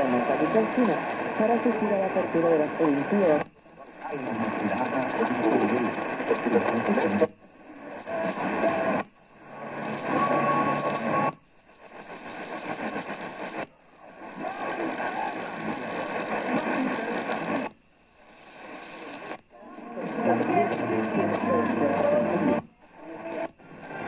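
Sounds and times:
distant radio station audio: 0:00.0 - 0:24.0
radio hiss and static: 0:00.0 - 0:24.0.

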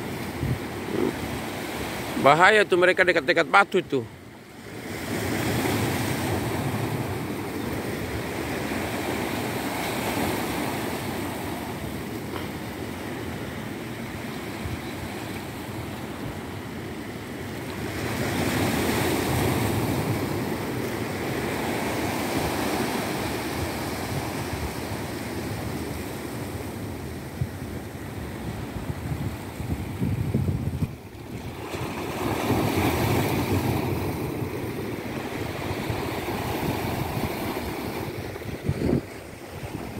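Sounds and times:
wind rumbling on microphone: 0:00.0 - 0:01.4, 0:18.6 - 0:39.9
sea surf washing: 0:00.0 - 0:39.9.

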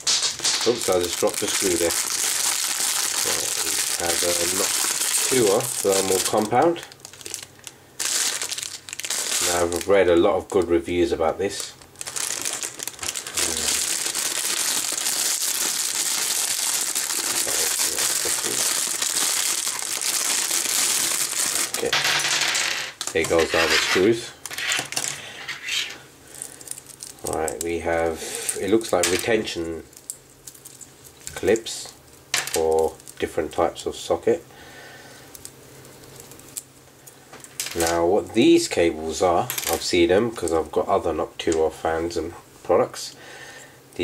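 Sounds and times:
plastic bag crinkling: 0:00.0 - 0:33.6, 0:35.2 - 0:36.8
low room hiss: 0:00.0 - 0:44.0.

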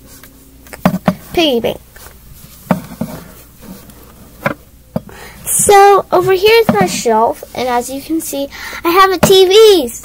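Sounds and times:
plush toy rubbing microphone: 0:00.9 - 0:04.6.

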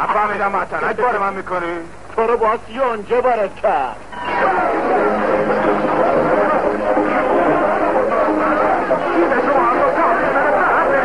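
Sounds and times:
crowd shouting and chattering: 0:04.0 - 0:11.0.

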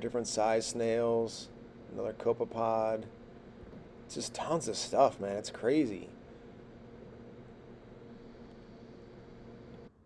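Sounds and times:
low hum with light hiss: 0:00.0 - 0:10.0.

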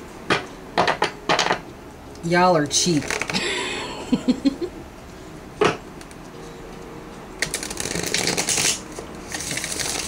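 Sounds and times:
cards being shuffled: 0:07.4 - 0:10.0.

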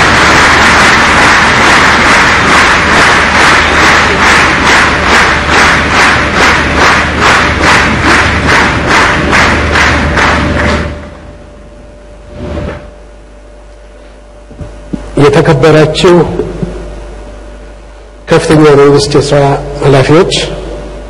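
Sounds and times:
audience applauding in rhythm: 0:00.0 - 0:11.4.

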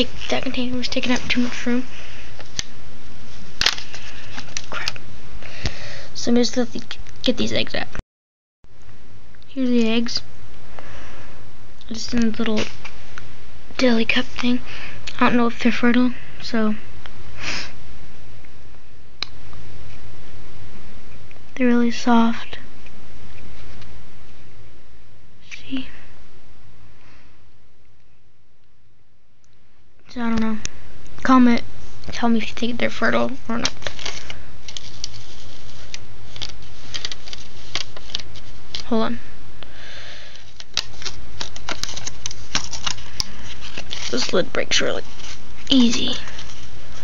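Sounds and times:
steady low hum: 0:00.0 - 0:08.0, 0:08.7 - 0:47.0
person sniffing: 0:17.4 - 0:17.8.

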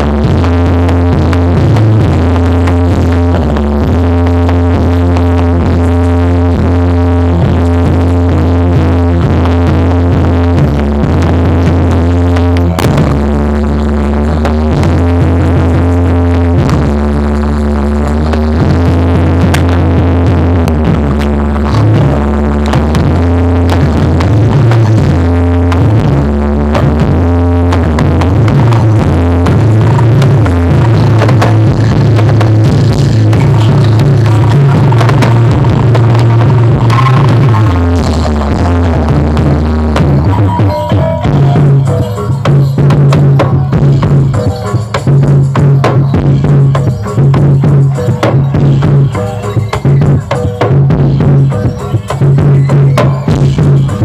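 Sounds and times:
electronic dance music: 0:00.0 - 0:54.0.

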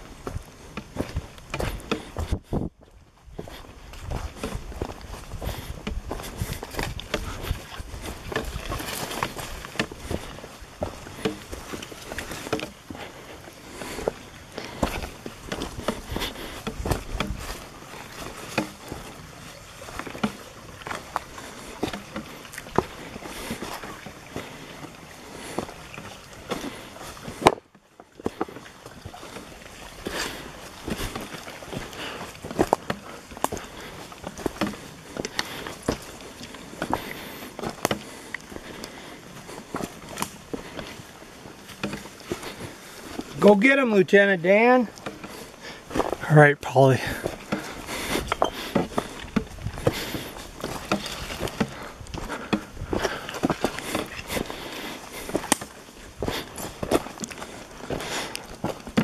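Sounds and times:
leaves and brush swishing: 0:00.0 - 0:46.2, 0:47.0 - 0:59.0
footsteps on forest trail: 0:00.0 - 0:59.0.

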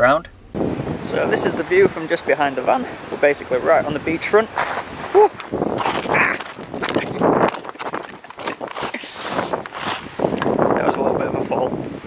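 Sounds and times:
footsteps on shingle: 0:04.5 - 0:11.0.

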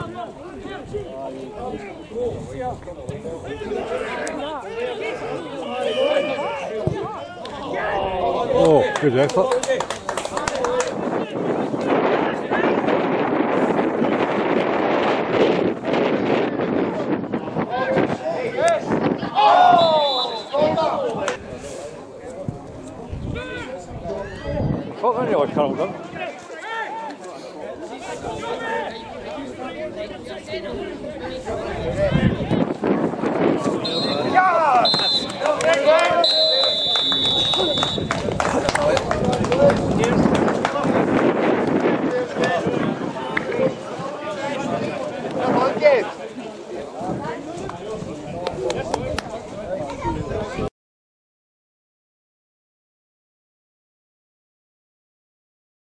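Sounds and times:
wind buffeting microphone: 0:00.0 - 0:04.6, 0:06.9 - 0:20.0, 0:22.3 - 0:26.3, 0:29.2 - 0:36.2, 0:37.0 - 0:50.7
men talking and calling out: 0:00.0 - 0:50.7.

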